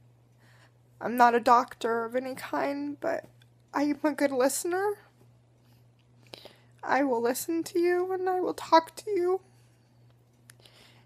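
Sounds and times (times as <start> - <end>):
low steady hum: 0.0 - 11.0
woman speaking: 1.0 - 5.1, 6.8 - 9.5.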